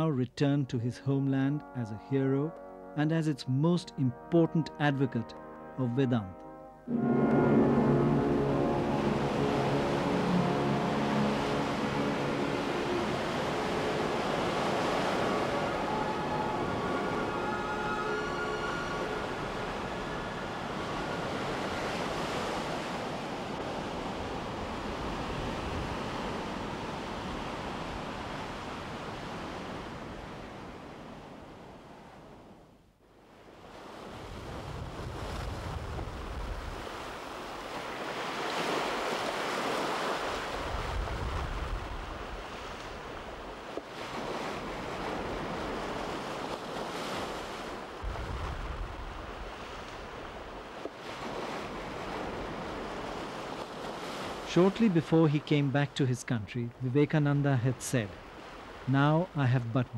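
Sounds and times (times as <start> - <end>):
ocean waves breaking: 6.4 - 32.5, 33.2 - 59.9.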